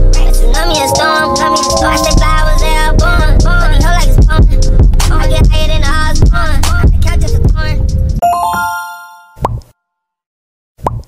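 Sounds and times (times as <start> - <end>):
outro music ringing notes: 0.4 - 4.2
cartoon bloop pops: 10.8 - 11.0.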